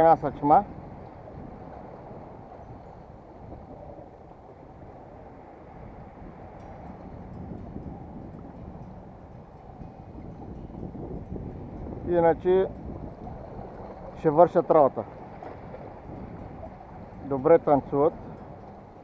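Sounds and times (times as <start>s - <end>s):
wind on microphone: 0.0s - 19.0s.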